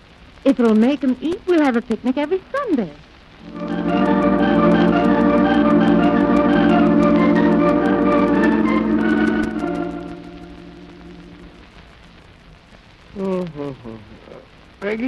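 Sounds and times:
old recording crackle: 0.0 - 15.0
organ chords: 3.4 - 11.7.

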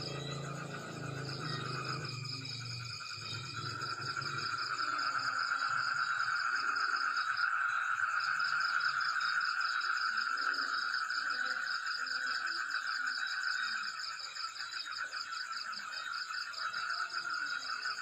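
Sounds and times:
frogs and insects trilling: 0.0 - 18.0.

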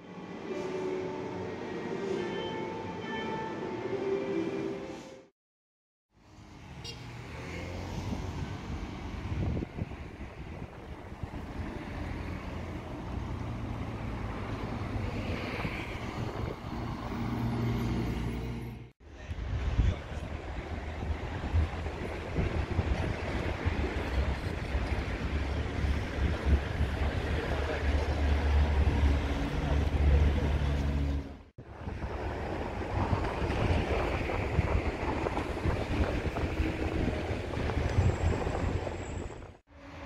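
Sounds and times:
passing cars rumbling: 6.2 - 40.0.

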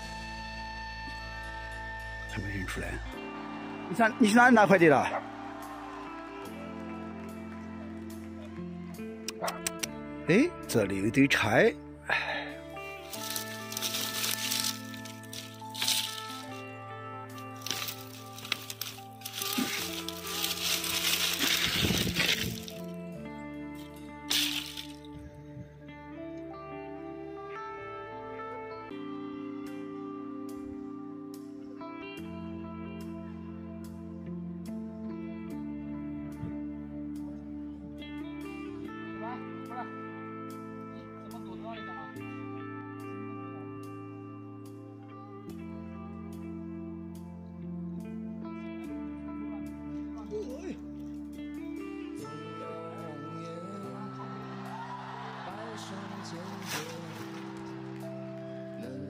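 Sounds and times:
background music with held notes: 0.0 - 59.0
brushwood branches rustling and cracking: 13.0 - 16.7, 17.3 - 23.0, 23.8 - 25.2, 56.1 - 58.1.

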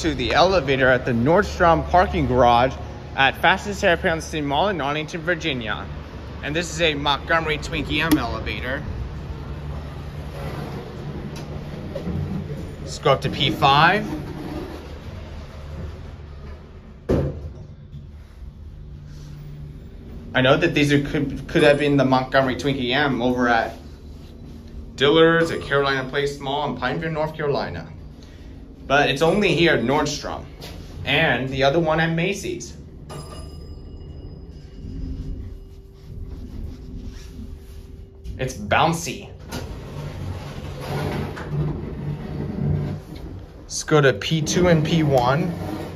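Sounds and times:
elevator car rumbling and humming: 0.0 - 17.1, 18.1 - 45.9
elevator doors sliding shut: 39.4 - 43.6.

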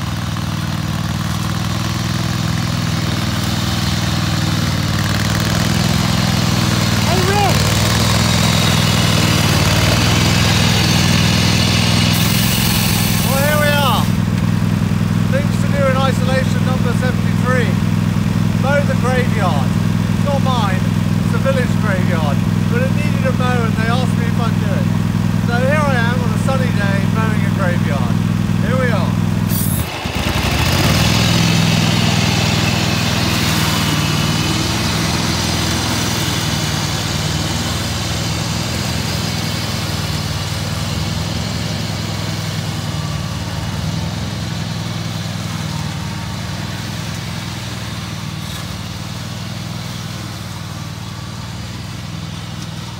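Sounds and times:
lawn mower engine running: 0.0 - 52.9.

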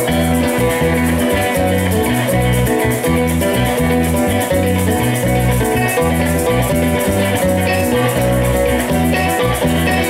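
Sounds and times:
maracas shaken: 0.0 - 10.0.

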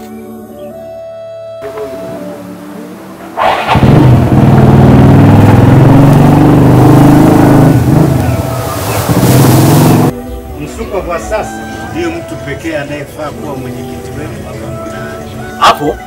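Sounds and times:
motorcycle engine starting and revving: 1.6 - 10.2.

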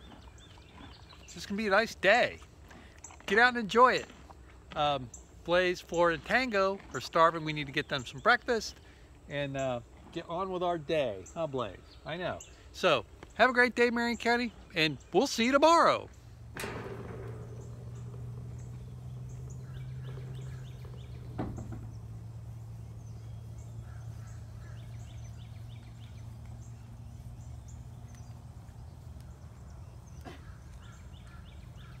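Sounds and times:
birds chirping: 0.0 - 32.0
steady low hum: 16.1 - 32.0
sharp knocks: 16.5 - 22.4.

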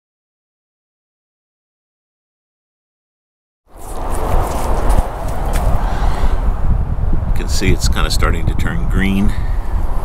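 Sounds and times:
heavy low rumble: 3.9 - 8.6.

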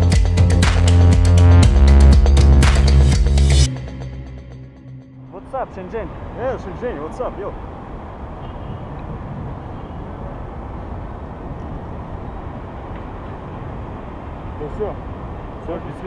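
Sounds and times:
person speaking: 5.2 - 7.6
wind buffeting microphone: 7.6 - 14.5.

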